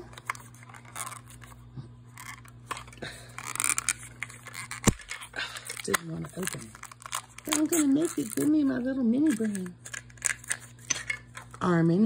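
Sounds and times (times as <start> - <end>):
plastic wrapper crinkling: 0.0 - 11.6.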